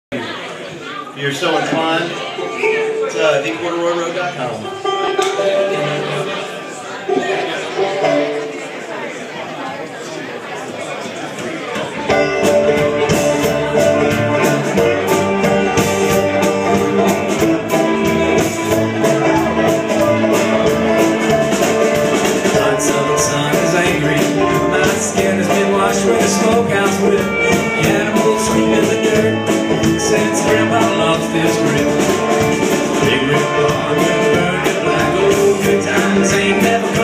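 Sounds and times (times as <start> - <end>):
banjo: 0.1 - 37.0
upright bass: 2.7 - 6.6, 12.1 - 37.0
fiddle: 12.0 - 37.0
electric guitar: 12.1 - 37.0.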